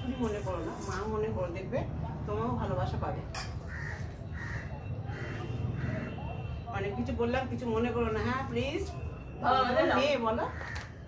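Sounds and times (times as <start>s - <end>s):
crow cawing: 3.6s - 6.2s, 10.4s - 11.0s.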